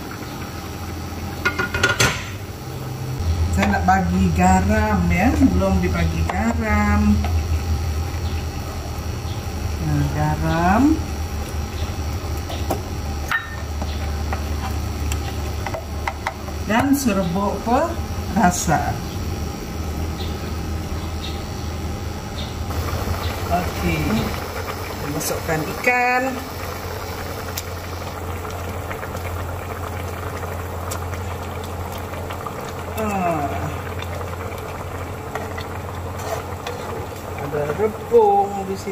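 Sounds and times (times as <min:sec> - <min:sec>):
broth bubbling in a pan: 0:00.0 - 0:21.6, 0:22.6 - 0:38.9
low hum: 0:02.5 - 0:38.8
spatula scraping pan: 0:36.1 - 0:37.0.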